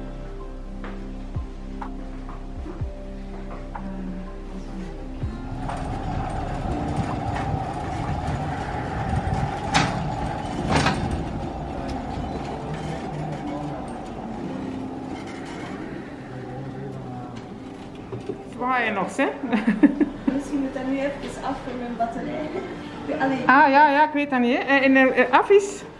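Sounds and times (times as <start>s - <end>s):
background music: 0.0s - 25.9s
hospital bed castors rolling: 5.4s - 23.4s.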